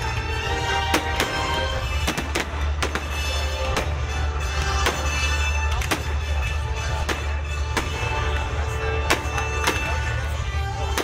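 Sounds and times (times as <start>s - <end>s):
fireworks bursting with sharp bangs: 0.0s - 10.2s
music with heavy bass: 0.0s - 11.0s.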